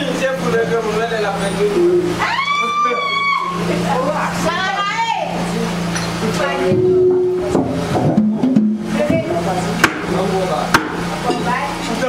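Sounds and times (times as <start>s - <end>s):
steady low hum: 0.0s - 12.0s
voices: 0.0s - 12.0s
sharp knocks: 6.7s - 11.0s.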